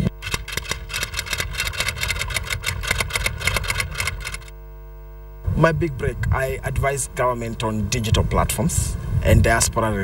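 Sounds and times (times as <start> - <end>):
rapid clattering pulses: 0.2 - 4.5.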